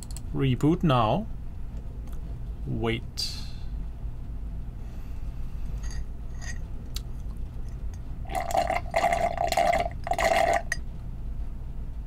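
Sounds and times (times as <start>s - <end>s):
slurping through a straw: 8.3s - 10.8s.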